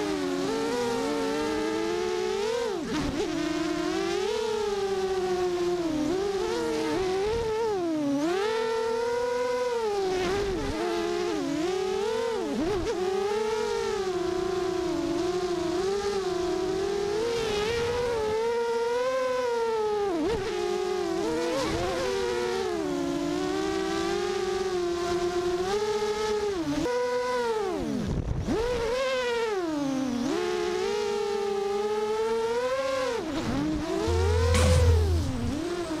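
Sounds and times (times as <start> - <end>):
low hum: 34.0 - 36.0.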